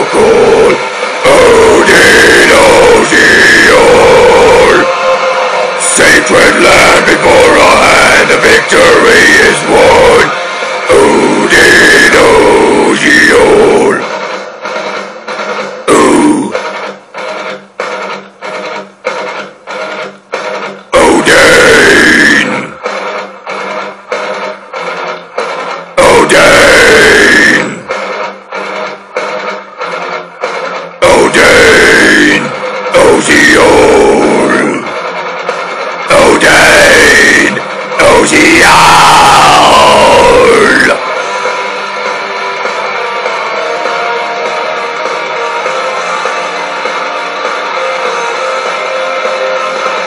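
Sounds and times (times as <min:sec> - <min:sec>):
harsh vocal phrase: 0:00.0 - 0:05.0, 0:05.8 - 0:14.1, 0:15.9 - 0:16.6, 0:21.0 - 0:22.8, 0:26.0 - 0:27.9, 0:31.0 - 0:35.0, 0:36.1 - 0:41.1
heavy metal guitars and drums: 0:00.0 - 0:17.0, 0:18.4 - 0:29.7, 0:30.5 - 0:50.0.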